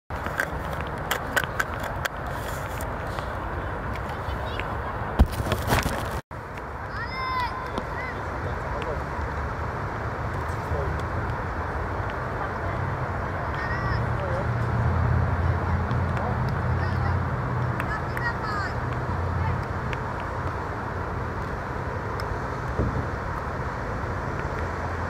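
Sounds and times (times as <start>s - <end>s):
distant children shouting: 6.9s - 8.6s.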